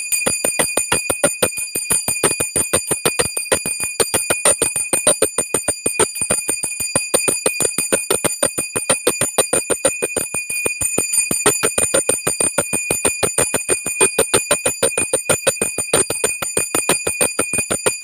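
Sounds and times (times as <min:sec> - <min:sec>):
hand bell rung rapidly: 0:00.0 - 0:18.0.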